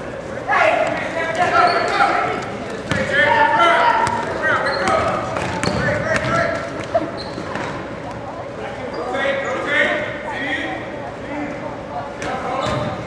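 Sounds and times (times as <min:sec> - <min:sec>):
voices shouting and chattering: 0:00.0 - 0:13.0
basketball bouncing on gym floor: 0:02.8 - 0:03.1, 0:04.0 - 0:07.8.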